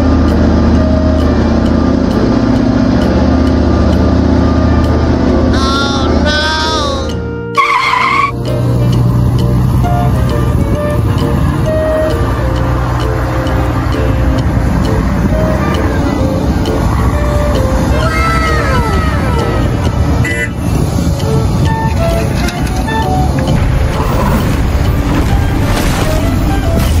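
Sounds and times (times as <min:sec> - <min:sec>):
heavy machine engine running: 0:00.0 - 0:07.5, 0:08.3 - 0:27.0
background music: 0:00.0 - 0:27.0
falling whines: 0:07.5 - 0:08.4
short pitched tone: 0:07.6 - 0:08.4.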